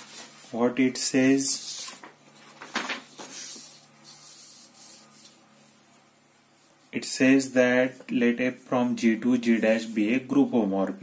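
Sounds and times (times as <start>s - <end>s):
paper sliding over paper: 3.1s - 5.9s.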